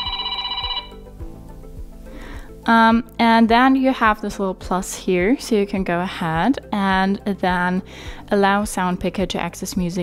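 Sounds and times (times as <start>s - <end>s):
pulsing electronic ringtone: 0.0s - 1.1s.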